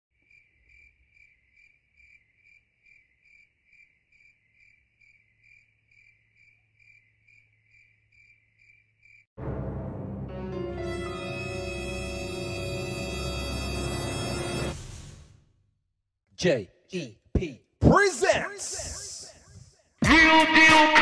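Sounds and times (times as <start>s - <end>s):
cricket chirping: 0.2s - 9.3s
loud burst of music: 20.0s - 21.0s.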